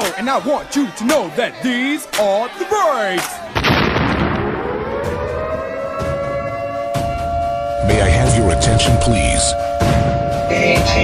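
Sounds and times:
boom rumble: 3.6s - 6.2s
air-raid siren wailing: 4.2s - 11.0s.

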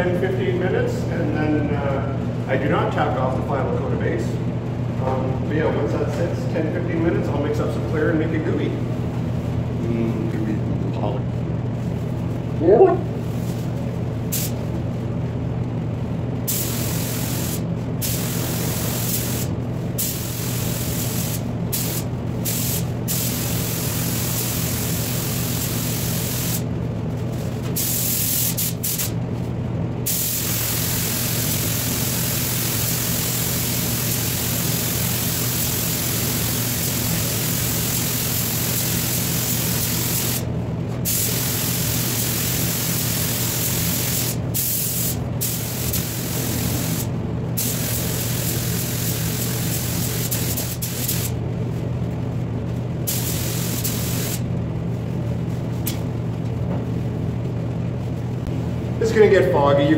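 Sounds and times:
steady low hum: 0.0s - 59.9s
air spray gun hissing: 14.3s - 14.6s, 16.5s - 26.7s, 27.8s - 29.2s, 30.1s - 51.4s, 53.1s - 54.4s.

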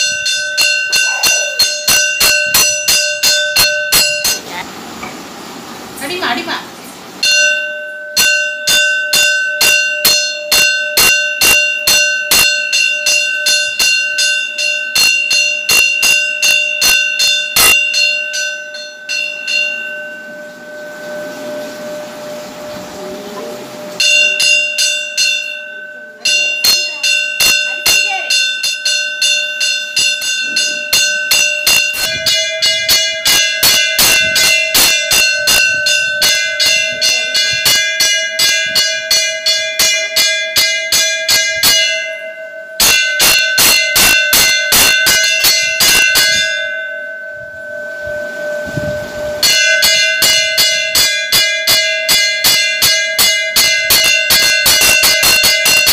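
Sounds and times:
temple bell ringing: 0.0s - 4.6s, 7.2s - 55.9s.

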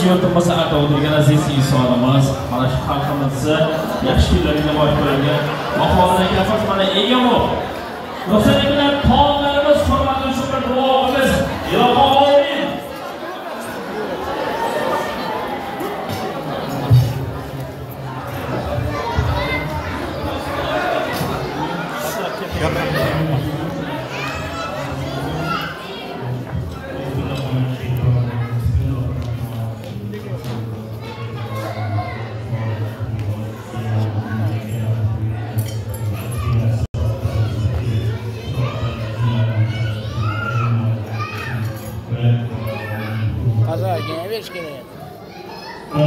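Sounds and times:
man speaking over loudspeaker: 0.0s - 13.0s, 16.7s - 45.1s
chatter of guests: 0.0s - 46.0s.

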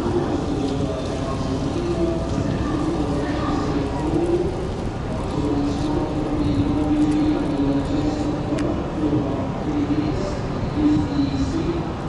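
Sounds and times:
ship machinery hum and rumble: 0.0s - 12.0s.

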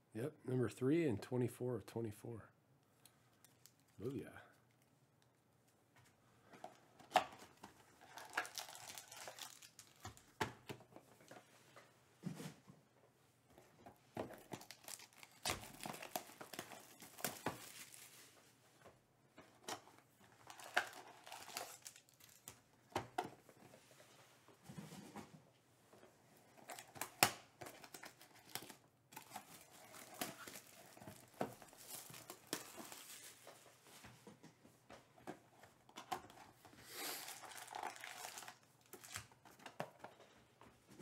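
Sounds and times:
packaging crinkling and tearing: 8.0s - 10.4s, 14.3s - 18.3s, 20.4s - 22.6s, 26.5s - 33.5s, 37.0s - 39.8s.

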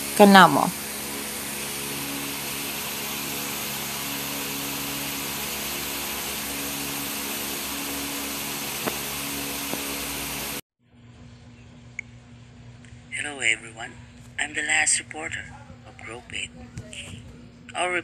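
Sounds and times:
steady hiss: 0.0s - 10.6s
faint low hum: 0.0s - 18.0s.

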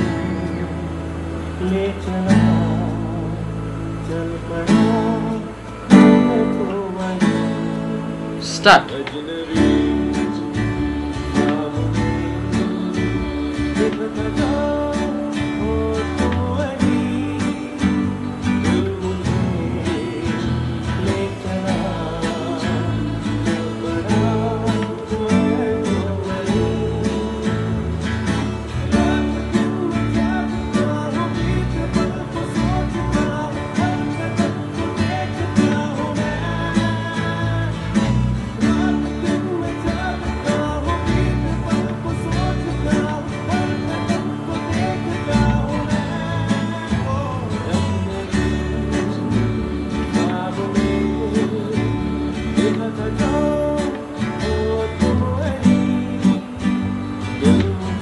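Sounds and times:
acoustic guitar strumming: 0.0s - 58.0s
recorded song with singing: 0.0s - 58.0s.

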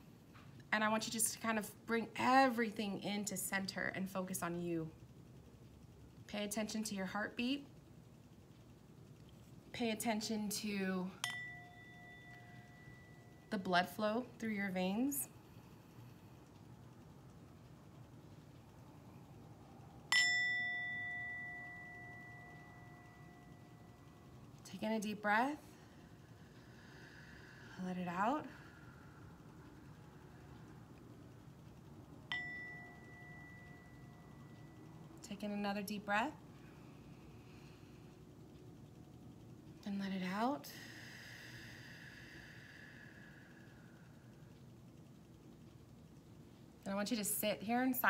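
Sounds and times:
singing bowl ringing: 11.1s - 14.0s, 20.1s - 24.6s, 32.3s - 35.1s.

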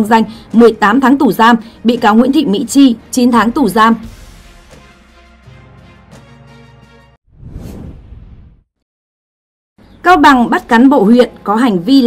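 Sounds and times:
whoosh sound effect: 7.3s - 8.6s.

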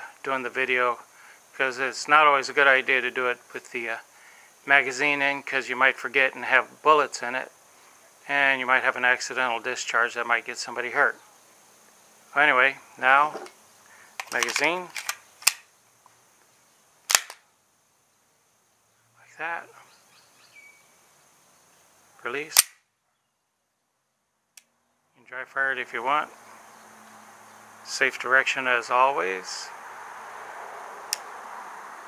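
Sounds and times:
background hiss: 0.0s - 32.0s
pistol slide metallic clicks: 14.2s - 15.7s, 17.1s - 17.4s, 22.5s - 22.8s.

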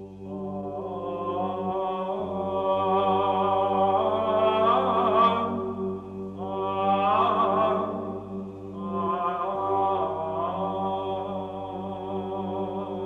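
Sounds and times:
chanting voices: 0.0s - 13.0s
steady held drone: 0.0s - 13.0s.

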